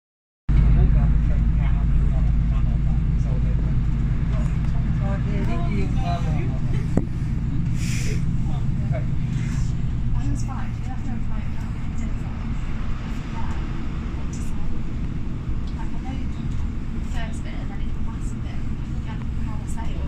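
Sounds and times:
train engine and track rumble: 0.5s - 20.0s.

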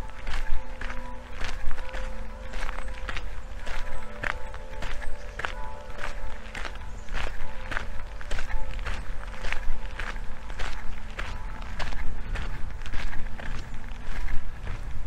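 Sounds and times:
footsteps crunching on gravel: 0.0s - 15.0s.

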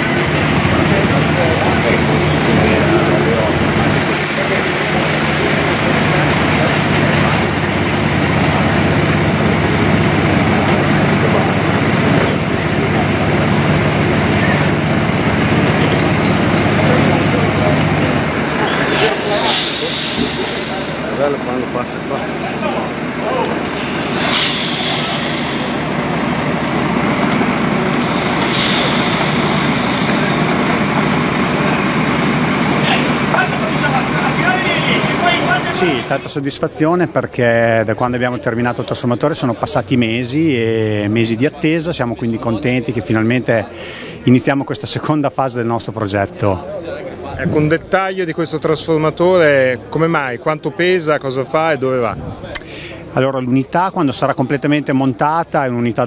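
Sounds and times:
diesel engine running: 0.0s - 36.9s
voices: 0.0s - 56.0s
short hisses: 18.2s - 21.6s, 23.5s - 32.0s.

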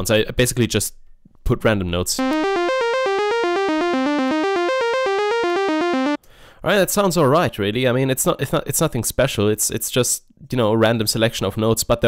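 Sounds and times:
synthesizer arpeggio: 2.2s - 6.2s.

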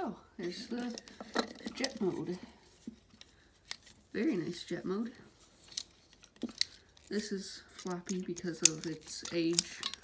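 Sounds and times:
plastic toy clicking: 7.8s - 10.0s.

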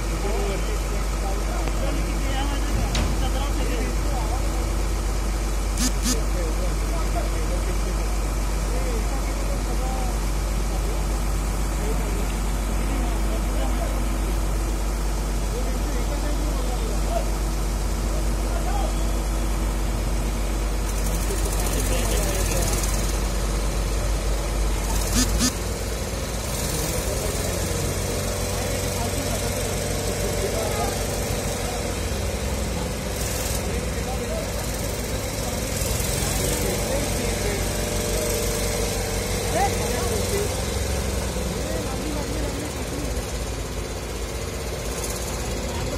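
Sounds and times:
crane diesel engine running: 0.0s - 45.9s.

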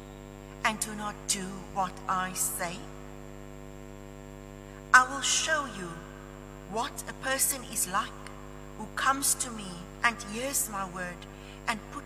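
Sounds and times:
electrical hum from sound system: 0.0s - 12.0s.

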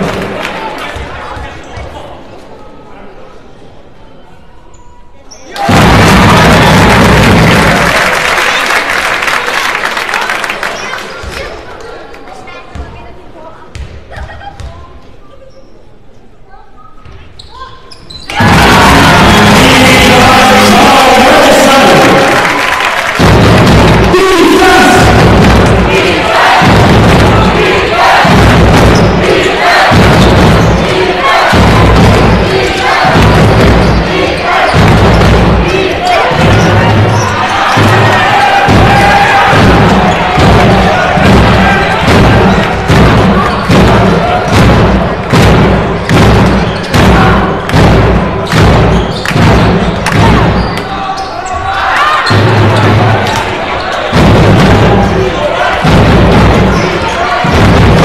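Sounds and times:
crowd noise: 0.0s - 58.0s
basketball bouncing on court: 12.7s - 13.0s, 13.7s - 14.8s, 24.9s - 51.3s
music with pounding beat: 23.2s - 50.6s, 54.1s - 58.0s.

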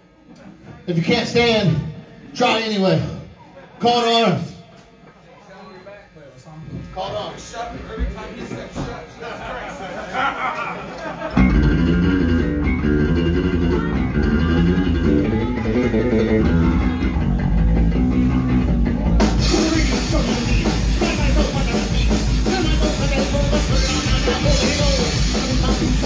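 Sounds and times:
punk rock band playing: 11.0s - 26.0s.

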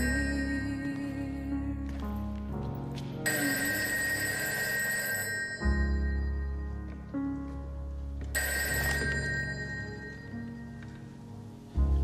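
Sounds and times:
slow background music: 0.0s - 12.0s
rotary telephone bell ringing: 3.3s - 6.2s, 8.4s - 10.2s.

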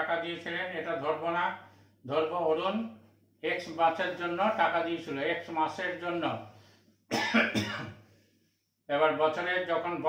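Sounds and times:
man coughing: 7.1s - 8.1s.

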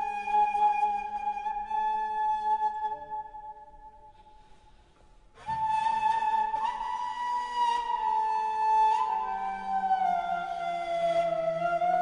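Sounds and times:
slow flute music: 0.0s - 12.0s.

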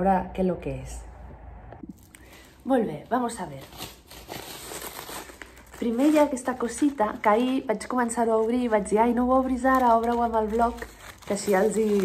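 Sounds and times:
tote bag rustling: 2.0s - 12.0s
wrapping paper crinkling: 2.0s - 12.0s.

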